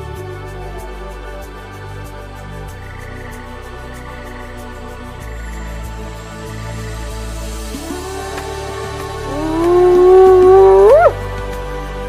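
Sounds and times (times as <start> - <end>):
background music: 0.0 - 12.0
hyena whooping: 7.8 - 11.2.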